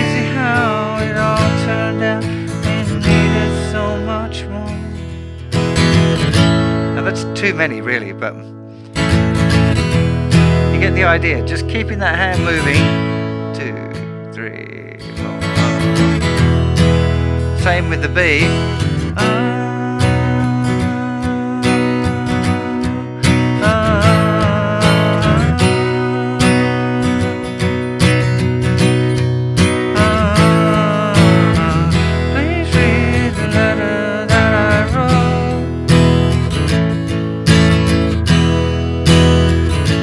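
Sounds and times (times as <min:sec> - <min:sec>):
acoustic guitar strumming: 0:00.0 - 0:40.0.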